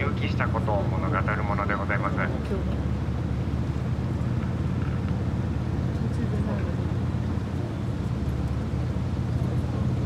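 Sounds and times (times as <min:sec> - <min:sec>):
boat engine humming: 0:00.0 - 0:10.0.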